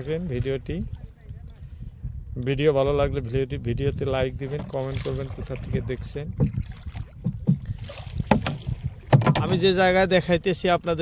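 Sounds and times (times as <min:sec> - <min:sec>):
water splashing around boat: 0:03.9 - 0:10.1
sharp splashes or knocks: 0:04.5 - 0:09.7.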